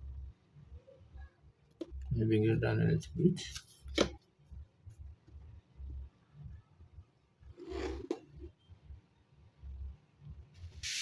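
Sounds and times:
short hiss: 0:10.8 - 0:11.0.

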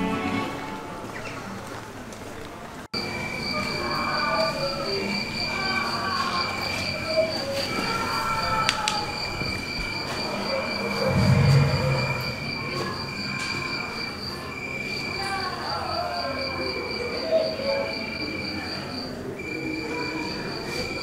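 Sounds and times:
high cricket-like chirping: 0:03.0 - 0:21.0
faint gliding tones: 0:10.7 - 0:13.3
low swell: 0:10.8 - 0:13.3.

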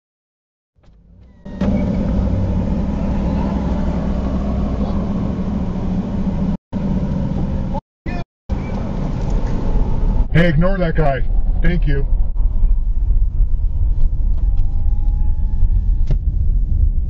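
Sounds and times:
car interior rumble and hum: 0:00.8 - 0:17.0.

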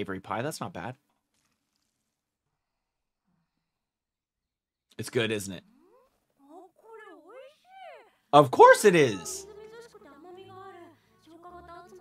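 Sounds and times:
high-pitched cartoon female exclamation: 0:06.4 - 0:08.1.

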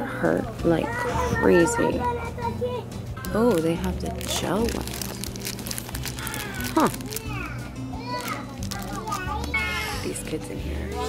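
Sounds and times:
children talking and calling out: 0:00.7 - 0:03.2, 0:06.1 - 0:10.2.

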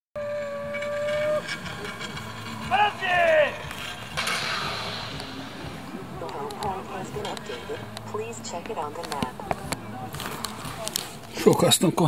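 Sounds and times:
zipline trolley whining on cable: 0:00.2 - 0:03.0.

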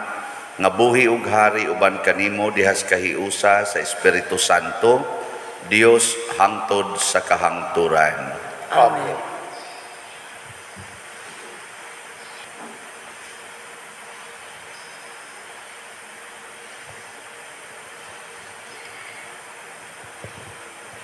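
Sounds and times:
steady background hiss: 0:00.0 - 0:21.0.

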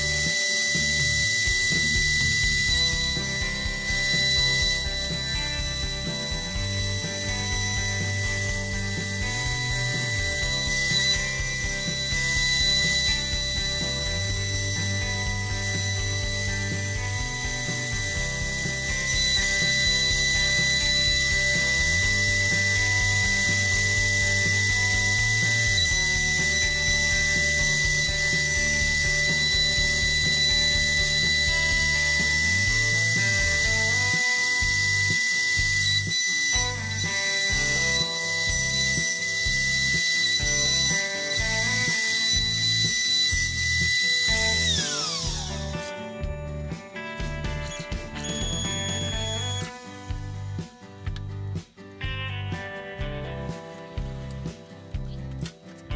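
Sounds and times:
router spindle whining: 0:00.0 - 0:51.6
background music with beat: 0:00.0 - 0:55.9.

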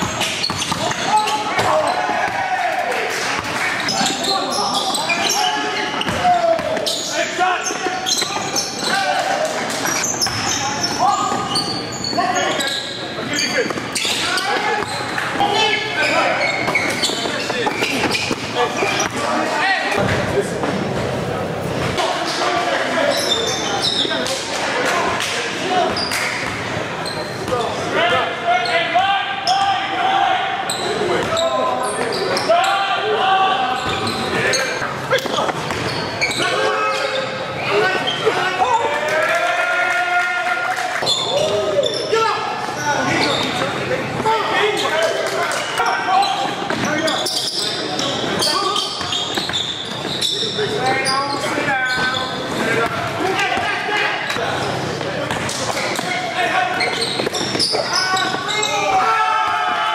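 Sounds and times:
players calling out: 0:00.0 - 0:59.9.

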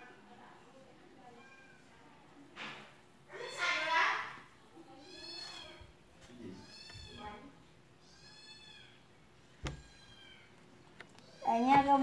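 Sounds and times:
cat meowing faintly: 0:04.9 - 0:09.0.

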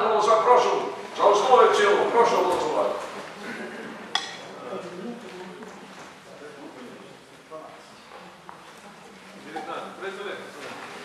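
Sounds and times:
faint voices murmuring: 0:02.1 - 0:11.0.

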